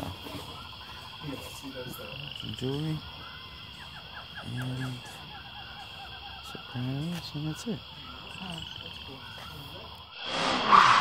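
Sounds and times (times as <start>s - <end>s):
faint voices: 0.0s - 10.1s.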